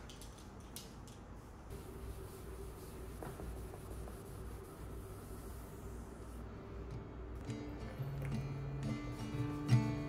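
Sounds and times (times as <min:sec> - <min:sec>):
cloth wiping a tabletop: 0:01.7 - 0:06.4.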